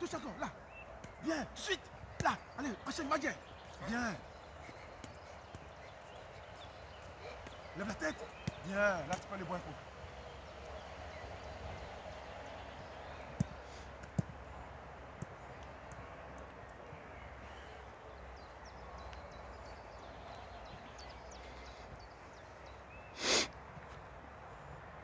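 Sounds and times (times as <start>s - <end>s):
faint outdoor background noise: 0.0s - 25.0s.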